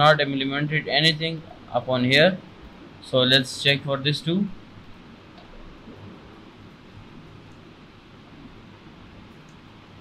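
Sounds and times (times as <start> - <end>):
faint low hum: 0.0 - 10.0
steady low hiss: 0.0 - 10.0.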